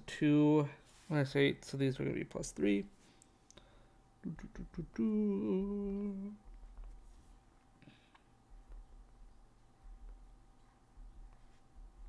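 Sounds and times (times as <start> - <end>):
man humming: 4.2 - 6.5.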